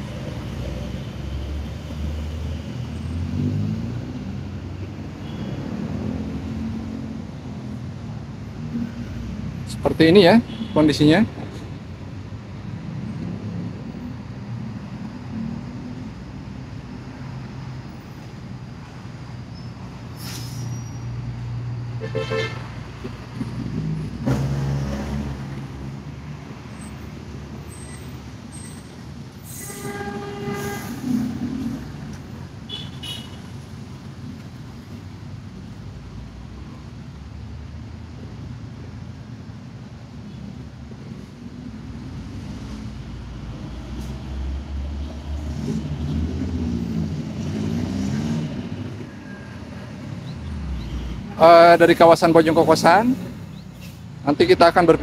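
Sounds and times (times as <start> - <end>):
vehicle engines rumbling: 0.0 - 55.0
vehicle horns honking: 5.2 - 5.6, 10.3 - 11.1, 22.0 - 22.8, 29.5 - 31.3, 32.7 - 33.5.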